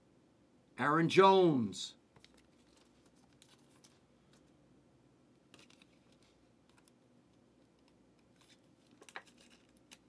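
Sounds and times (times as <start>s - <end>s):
card and plastic sleeve rustling: 2.1s - 4.6s, 5.5s - 7.0s, 7.7s - 10.0s.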